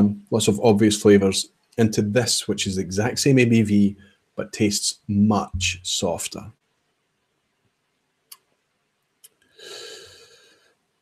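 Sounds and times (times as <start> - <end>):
soft breath: 9.5 - 10.8.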